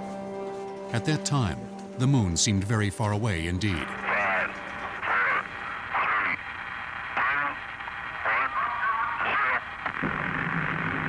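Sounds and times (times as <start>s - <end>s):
radio voice transmissions: 1.0s - 10.2s.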